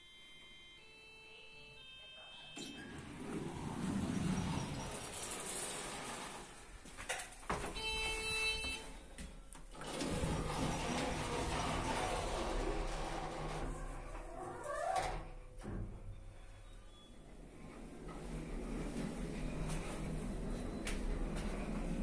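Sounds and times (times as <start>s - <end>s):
automatic lift doors sliding: 2.4s - 9.0s, 9.6s - 22.0s.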